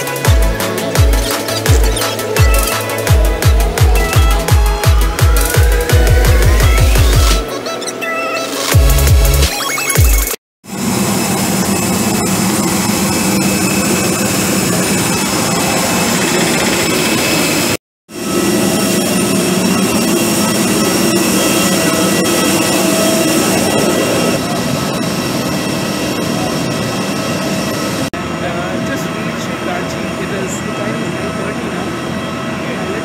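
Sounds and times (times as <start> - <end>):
jet turbines whining: 0.0 - 9.9, 10.7 - 33.0.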